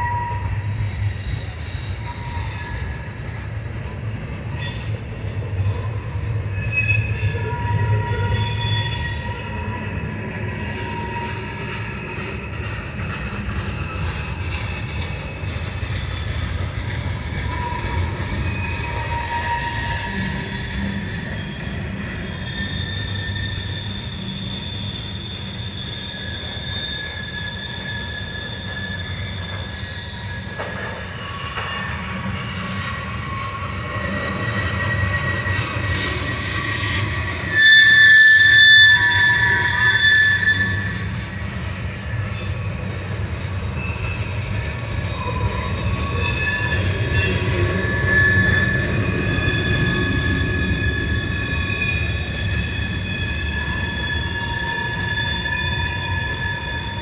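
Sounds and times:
freight train rumbling past: 0.0 - 57.0
train wheels squealing: 0.0 - 57.0.

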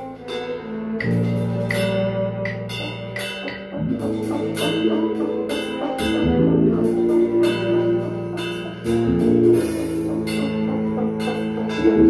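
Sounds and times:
drum and cymbal hits: 0.0 - 12.0
rhythm and blues band playing: 0.0 - 12.0.

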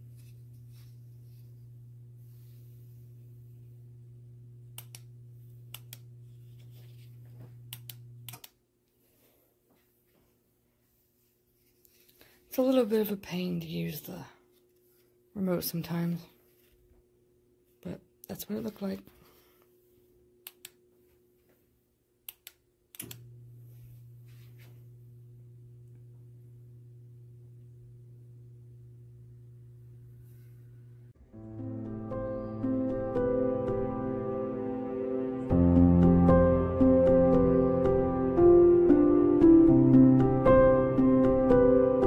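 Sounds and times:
electric fireplace humming: 0.0 - 9.8, 11.9 - 42.0
sharp clicks: 4.8 - 5.1, 22.3 - 23.2.

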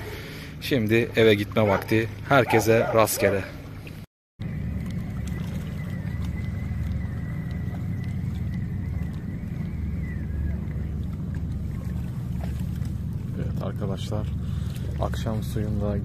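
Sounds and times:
wind buffeting microphone: 4.4 - 16.0.

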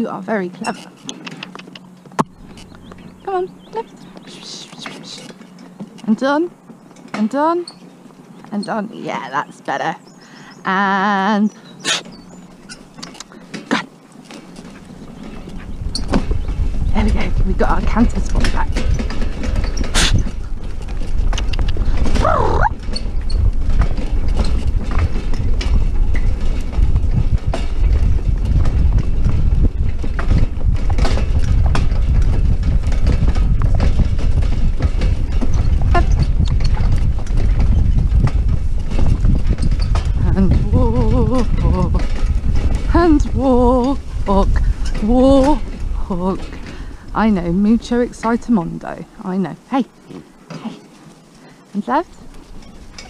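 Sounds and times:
horse hoofbeats: 0.0 - 10.2, 11.0 - 53.0
steady low rumble: 0.0 - 50.5
cart rattling: 0.0 - 53.0.

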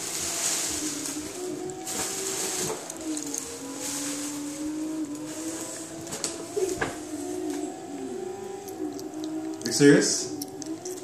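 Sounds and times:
paper bag and tissue rustling: 0.0 - 8.1
sharp paper crinkles: 0.0 - 11.0
steady low hum: 0.0 - 11.0.

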